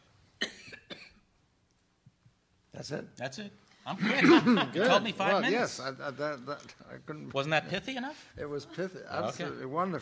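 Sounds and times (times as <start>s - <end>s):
person coughing: 0.4s - 1.2s.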